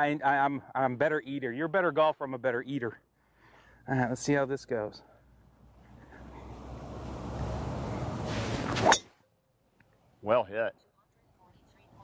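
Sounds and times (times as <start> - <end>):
golf club striking ball: 6.6 - 9.2.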